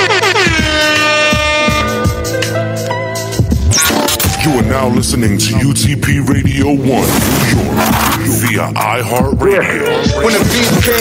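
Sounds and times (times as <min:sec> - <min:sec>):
air horn blasts: 0:00.0 - 0:02.4
hip-hop beat: 0:00.0 - 0:11.0.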